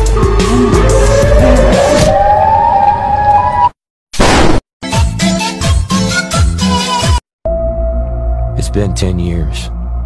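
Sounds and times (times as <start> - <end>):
bass-heavy music: 0.0 - 2.0
siren wailing: 0.0 - 3.8.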